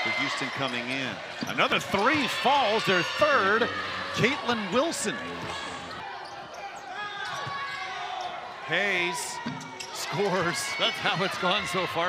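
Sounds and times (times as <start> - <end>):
crowd noise in arena: 0.0 - 12.0.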